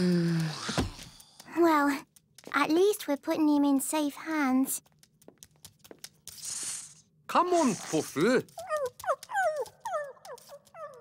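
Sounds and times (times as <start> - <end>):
puppy whimpering: 8.6 - 11.0.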